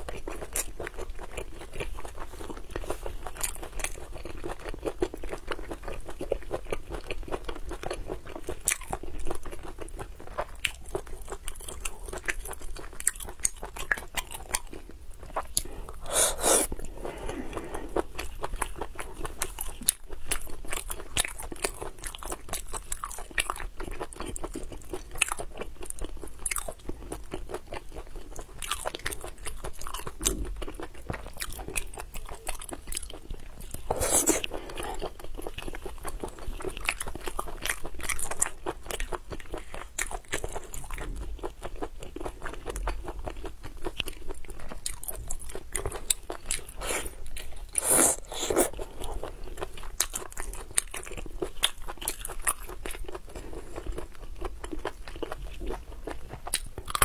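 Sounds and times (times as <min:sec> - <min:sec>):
wet chewing and smacking: 0:00.0 - 0:57.0.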